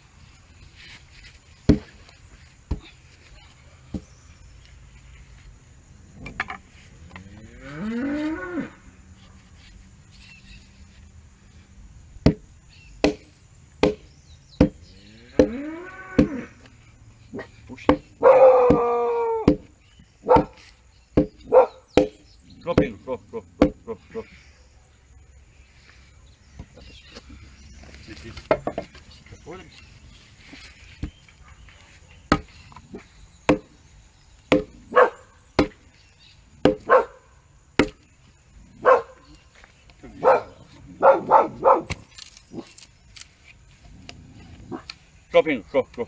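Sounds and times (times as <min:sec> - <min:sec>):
cattle mooing: 0:07.1 - 0:08.8, 0:15.0 - 0:16.6
wooden mallet knocking on log: 0:12.2 - 0:14.8, 0:15.4 - 0:15.6, 0:17.8 - 0:19.7, 0:20.3 - 0:23.0, 0:23.6 - 0:23.8, 0:28.4 - 0:29.0, 0:32.3 - 0:32.8, 0:33.4 - 0:33.8, 0:34.5 - 0:34.8, 0:35.6 - 0:35.8, 0:36.6 - 0:36.9, 0:37.8 - 0:38.0.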